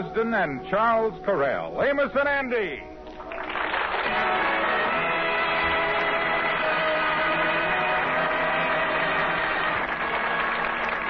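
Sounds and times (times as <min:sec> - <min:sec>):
orchestra playing sustained chords: 0:04.0 - 0:11.0.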